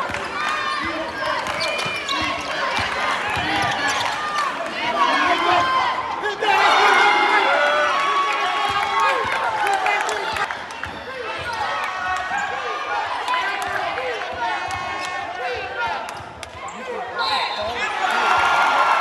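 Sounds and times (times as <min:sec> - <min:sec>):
sneakers squeaking: 0:00.0 - 0:04.5.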